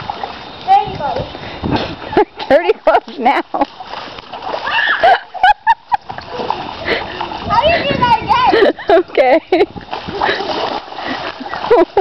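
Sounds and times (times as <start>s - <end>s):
child running through puddle: 3.6s - 5.2s, 6.0s - 8.6s, 9.9s - 12.0s.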